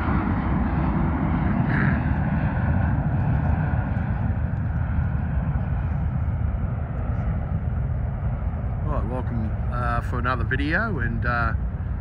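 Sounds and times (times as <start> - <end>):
jet engine rumble with whine: 0.0 - 12.0.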